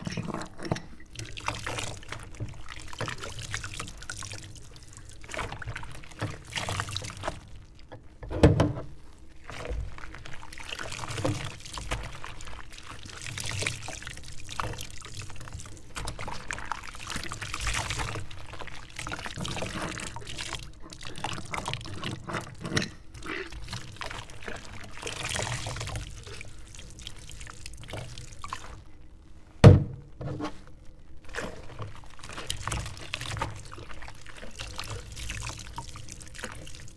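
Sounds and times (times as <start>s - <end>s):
glass jars clinking: 0.0s - 1.1s
water sloshing: 0.0s - 36.9s.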